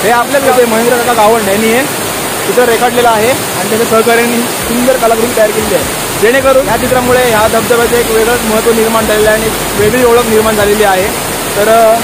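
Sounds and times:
man talking: 0:00.0 - 0:12.0
stream water rushing over rocks: 0:00.0 - 0:12.0.

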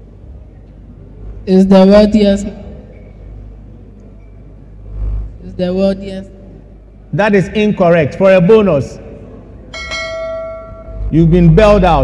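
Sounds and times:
bell ringing: 0:09.7 - 0:11.2.

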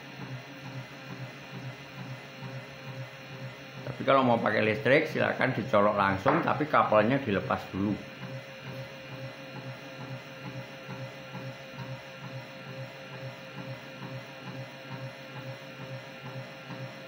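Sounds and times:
motor knocking against table: 0:06.1 - 0:06.7.

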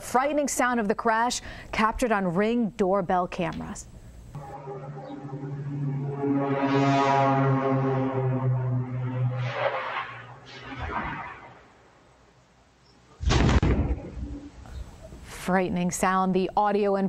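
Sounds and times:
loud crash boom: 0:04.4 - 0:12.0, 0:13.3 - 0:14.1
airplane engines droning: 0:04.4 - 0:12.3.

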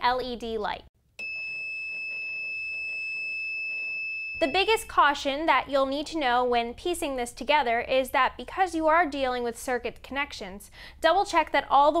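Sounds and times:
high-pitched alarm buzzer: 0:01.2 - 0:04.8.

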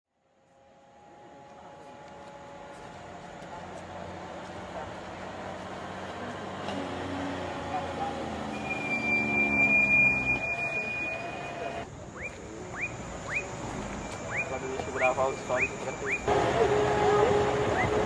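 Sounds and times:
heavy truck engine: 0:00.3 - 0:12.1, 0:12.9 - 0:18.0
high squeal: 0:08.4 - 0:11.8
short rising whistles: 0:08.5 - 0:11.4.

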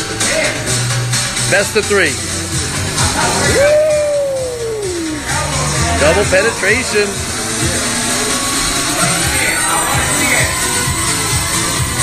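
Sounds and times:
background music: 0:00.0 - 0:12.0
crowd chatter: 0:02.6 - 0:12.0.

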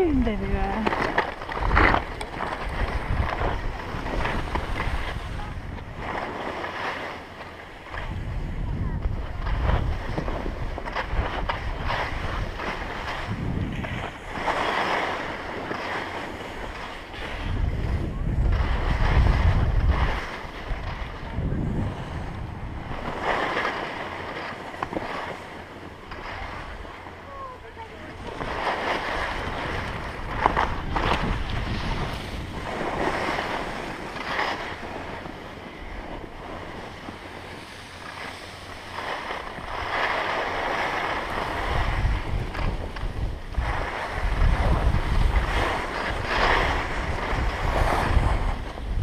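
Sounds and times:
skis scraping over snow: 0:00.0 - 0:07.2, 0:08.0 - 0:26.9, 0:27.7 - 0:49.0
wind buffeting microphone: 0:00.0 - 0:49.0.

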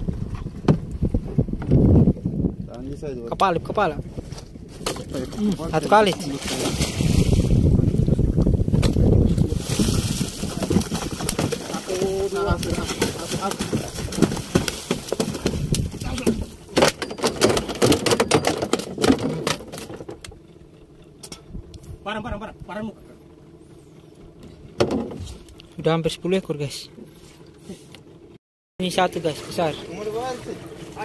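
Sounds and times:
sharp knocks and thuds in boat: 0:00.0 - 0:02.6, 0:03.4 - 0:20.5, 0:24.3 - 0:25.5
water splashing and churning: 0:03.8 - 0:20.2, 0:28.8 - 0:31.0.

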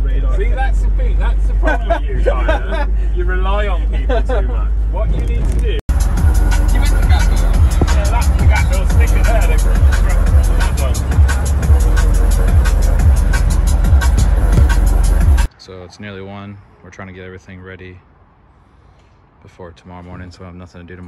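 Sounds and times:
van driving on road: 0:00.0 - 0:15.5
voices: 0:00.0 - 0:18.0
loud music with heavy bass: 0:05.9 - 0:15.5.

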